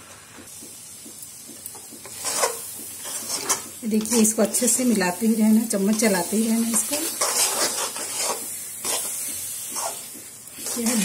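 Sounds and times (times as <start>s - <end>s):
soft sizzle of cooking mixture: 0.0s - 11.0s
spoon scraping metal pan: 2.0s - 5.0s, 5.8s - 11.0s.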